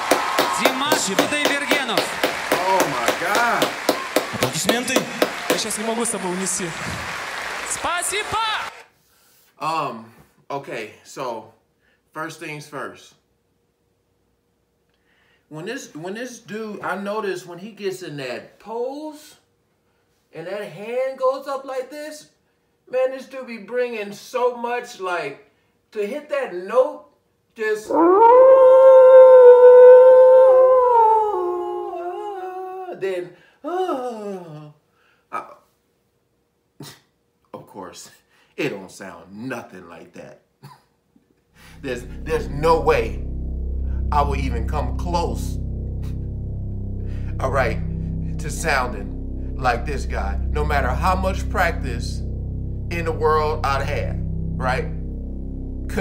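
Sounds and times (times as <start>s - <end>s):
hands clapping: 0.0s - 8.8s
man speaking: 0.6s - 3.8s, 4.4s - 6.9s, 41.6s - 43.2s, 44.0s - 46.2s, 47.1s - 52.2s, 52.9s - 55.0s
man singing a high note: 41.7s - 55.2s.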